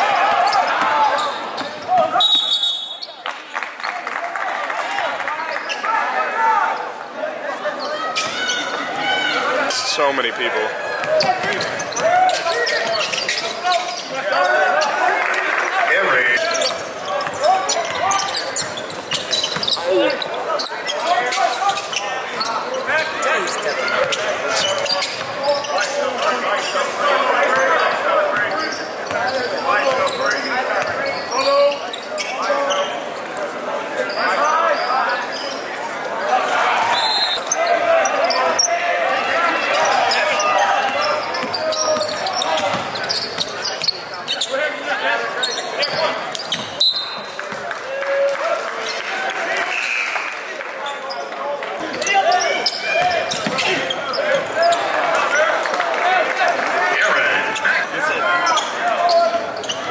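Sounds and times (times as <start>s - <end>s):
crowd voices echoing: 0.0s - 59.9s
basketball bouncing on court: 11.0s - 12.1s, 17.2s - 19.8s, 40.8s - 44.0s, 53.0s - 54.5s.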